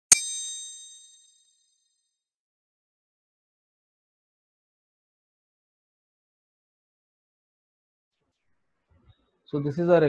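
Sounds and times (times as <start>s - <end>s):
bright metallic ding: 0.0s - 1.5s.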